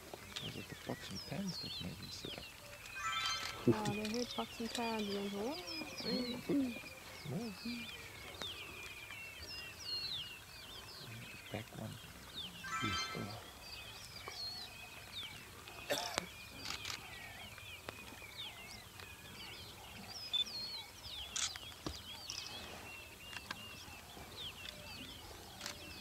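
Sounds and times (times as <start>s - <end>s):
small birds chirping and whistling: 0.0s - 26.0s.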